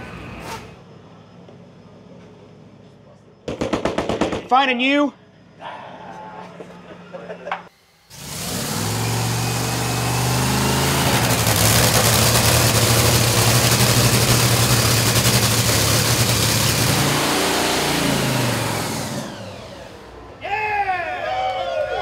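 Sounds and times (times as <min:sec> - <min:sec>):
dragster engine idling roughly: 0:08.2 - 0:18.8.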